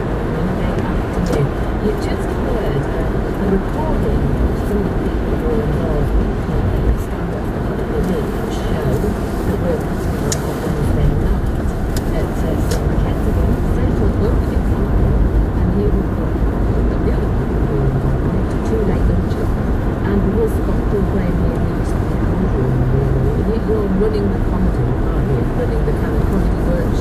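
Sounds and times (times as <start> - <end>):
car engine and tyres rumbling: 0.0 - 27.0.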